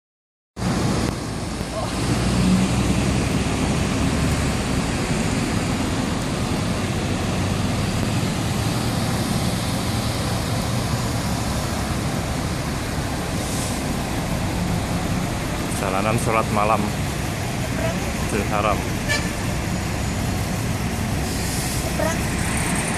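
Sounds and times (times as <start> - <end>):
road traffic rumble: 0.6 - 22.9.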